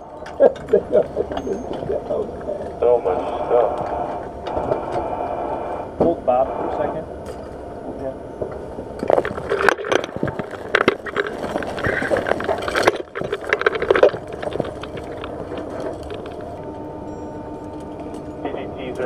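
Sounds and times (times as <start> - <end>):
equipment hum: 0.0 - 19.0
rustling clicks and knocks: 9.0 - 16.7.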